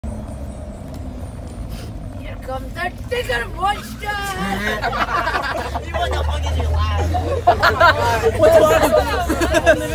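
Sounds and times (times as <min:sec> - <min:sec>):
bus engine rumble: 0:00.0 - 0:09.9
road noise: 0:00.0 - 0:09.9.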